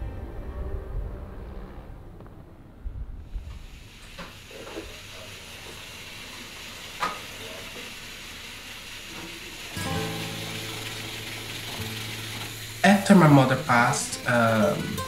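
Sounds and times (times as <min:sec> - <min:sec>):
sustained low musical note: 0:00.0 - 0:03.2
food sizzling in a pan: 0:03.6 - 0:15.0.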